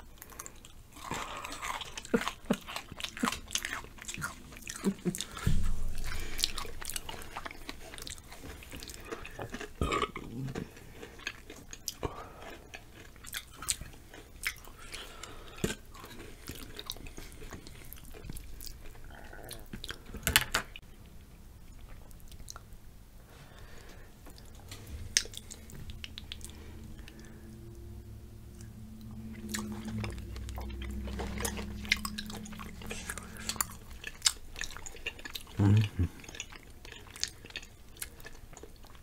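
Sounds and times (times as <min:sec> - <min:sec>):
chewing crunchy chips: 0:00.0 - 0:22.8, 0:23.5 - 0:27.9, 0:28.5 - 0:39.0
low thud: 0:05.4 - 0:07.8.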